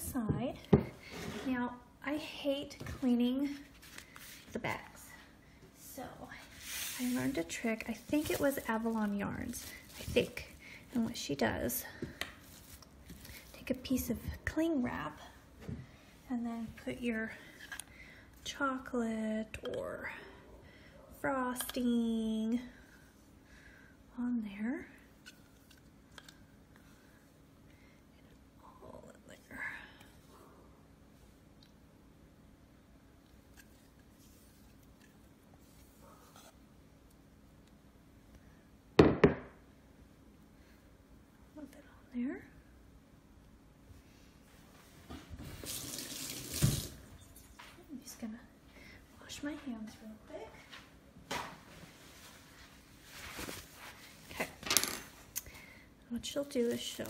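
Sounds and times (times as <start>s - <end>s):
rustling handling noise: 6.4s - 11.2s, 12.4s - 13.6s, 51.6s - 55.2s.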